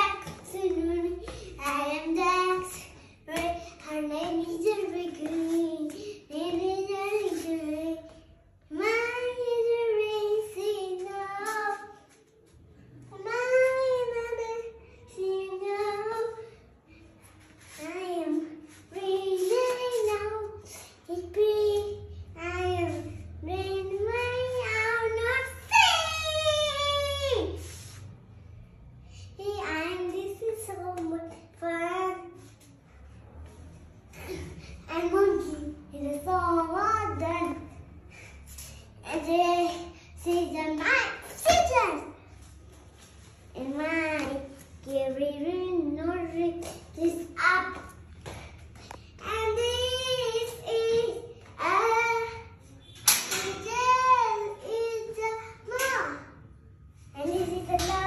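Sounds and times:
young boy singing: 0.0 - 12.1, 17.8 - 27.6
breaths: 1.2 - 1.6, 5.9 - 6.3, 20.6 - 21.1, 27.6 - 29.4, 34.1 - 34.9, 38.0 - 39.0, 39.8 - 40.2, 48.2 - 49.2.

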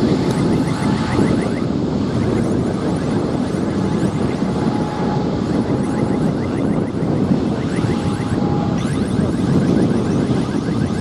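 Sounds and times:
faint thin engine whine: 0.0 - 11.0
jet engines rumbling: 0.0 - 11.0.

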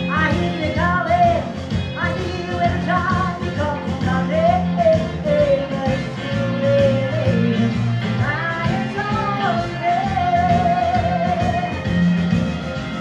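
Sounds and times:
woman singing into a microphone: 0.0 - 11.8
synthesizer keyboard accompaniment: 0.0 - 13.0.

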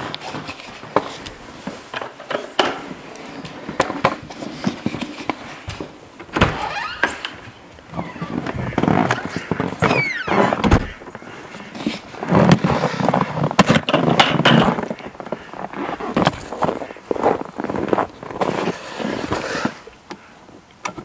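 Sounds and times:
door opening and shutting: 6.2 - 11.1
door squeak: 6.3 - 11.0
footsteps crunching through snow: 14.6 - 19.9.

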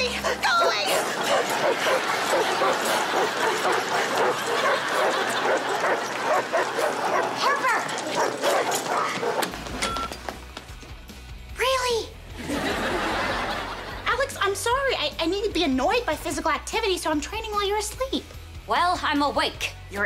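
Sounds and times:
dogs barking and yipping: 0.0 - 10.2.

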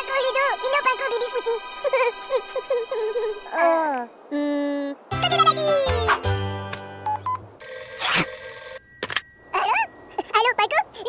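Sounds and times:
cartoon background music: 0.0 - 3.6, 5.1 - 7.3
telephone ringing: 7.1 - 9.7.

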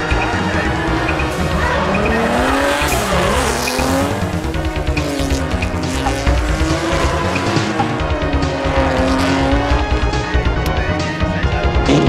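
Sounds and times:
car engine revving: 0.0 - 12.0
tyres squealing: 0.0 - 12.0.

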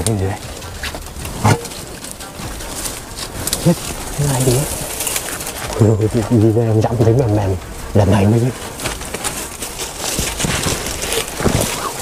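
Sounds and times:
bird cooing: 11.2 - 12.0.

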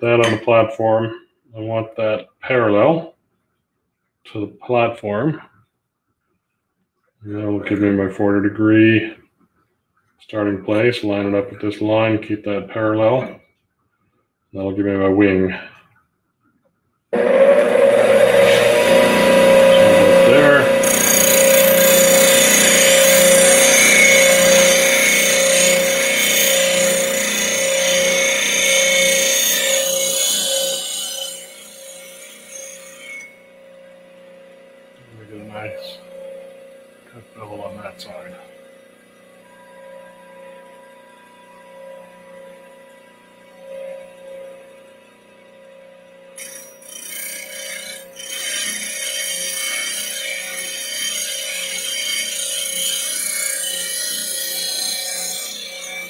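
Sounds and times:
steel rasping on grinding wheel: 17.2 - 34.0, 46.4 - 56.0
bench grinder motor humming: 17.2 - 56.0.

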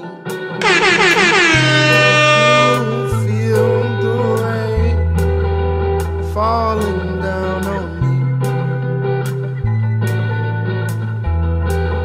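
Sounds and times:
air horn blast: 0.6 - 3.3
deep bass note: 0.6 - 3.3
music mix: 0.6 - 3.5.

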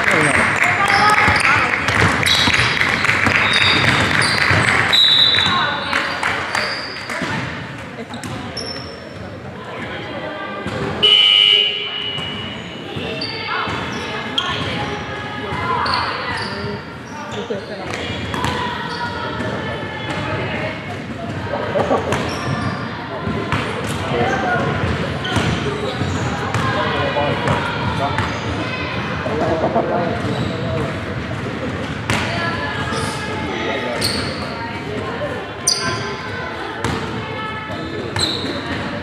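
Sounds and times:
voices echoing in a hall: 0.0 - 39.0
referee's whistle: 3.4 - 5.7.

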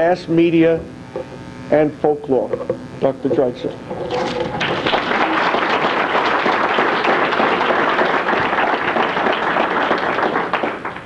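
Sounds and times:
audience applauding: 4.2 - 11.0.

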